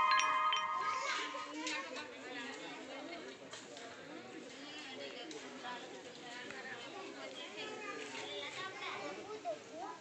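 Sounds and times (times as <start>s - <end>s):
crowd chattering: 0.0s - 10.0s
children's voices: 0.2s - 2.1s, 7.5s - 10.0s.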